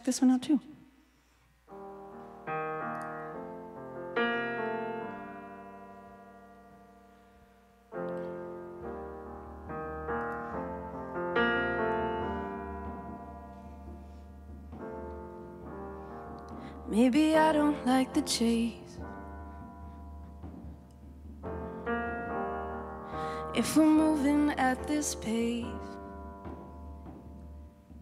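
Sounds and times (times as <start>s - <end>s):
keyboard piano chords: 1.7s - 28.0s.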